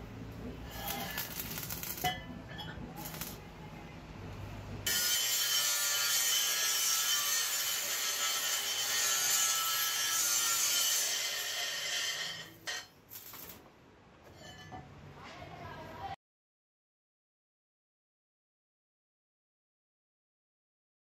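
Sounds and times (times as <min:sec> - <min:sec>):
harsh hiss of sparking metal: 0:00.7 - 0:02.1.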